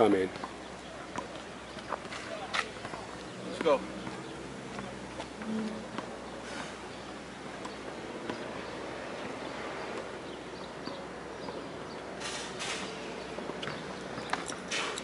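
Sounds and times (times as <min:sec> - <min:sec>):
outdoor background noise: 0:00.0 - 0:15.0.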